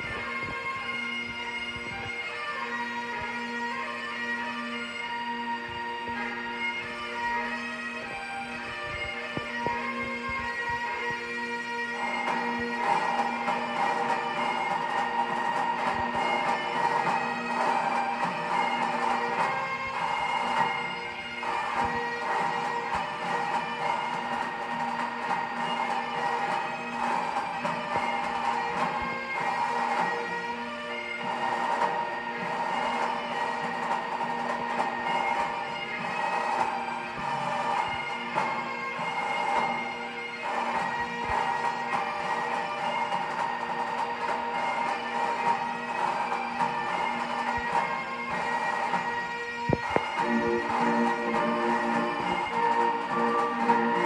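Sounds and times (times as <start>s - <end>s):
bagpipes playing: 0.0s - 54.0s.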